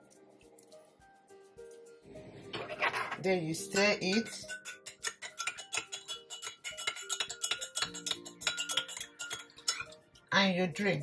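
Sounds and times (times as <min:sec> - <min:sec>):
teaspoon clinking in glass mug: 0:02.6 - 0:10.0.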